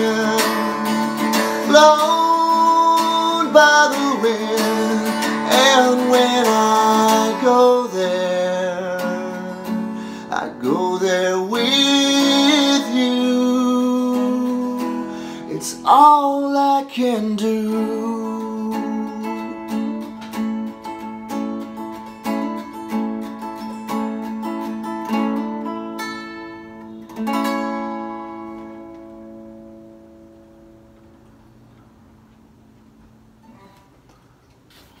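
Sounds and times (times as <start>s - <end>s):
guitar strumming: 0.0s - 33.5s.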